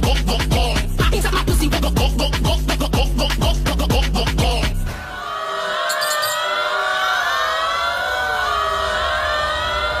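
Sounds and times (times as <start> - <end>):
wavering siren-like tones: 5.4 - 10.0.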